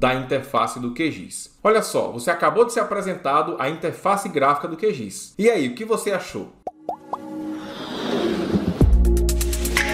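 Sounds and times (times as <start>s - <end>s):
rising swell effect: 7.0s - 9.4s
music: 7.0s - 9.9s.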